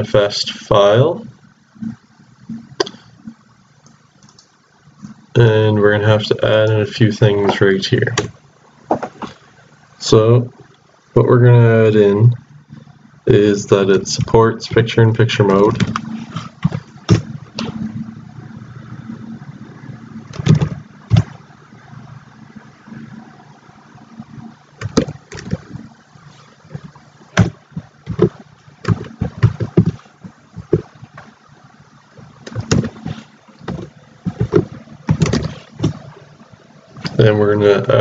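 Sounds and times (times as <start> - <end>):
low hum: 9.4 - 38.0.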